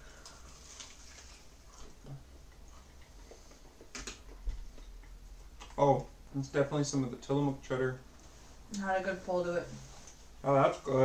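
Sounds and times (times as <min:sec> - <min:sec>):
low room hum: 0:00.0 - 0:11.0
chewing crunchy food: 0:00.1 - 0:06.1.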